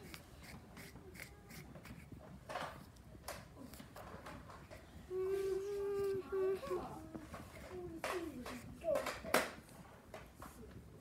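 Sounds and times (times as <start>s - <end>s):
child humming: 5.1s - 9.0s.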